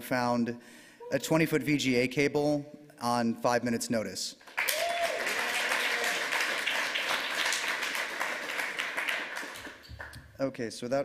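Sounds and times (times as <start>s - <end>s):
audience applauding: 4.5s - 10.2s.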